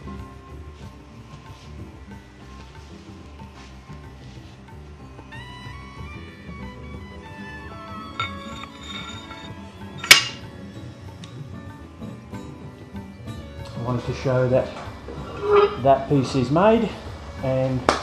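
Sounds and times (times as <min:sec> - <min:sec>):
instrumental background music: 0:00.0 - 0:18.0
light metal clink: 0:08.1 - 0:10.5
metal clank on anvil: 0:08.2 - 0:10.4.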